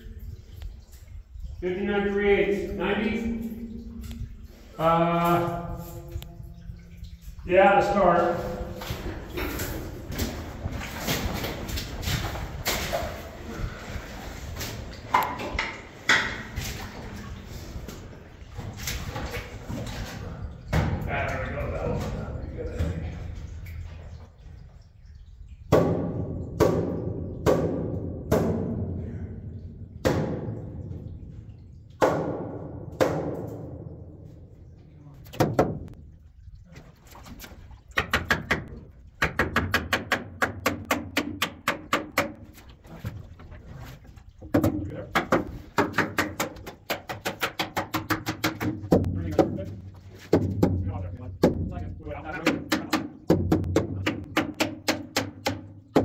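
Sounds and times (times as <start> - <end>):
hammer nailing wooden boards: 38.0 - 42.4, 44.6 - 49.6, 52.4 - 56.0.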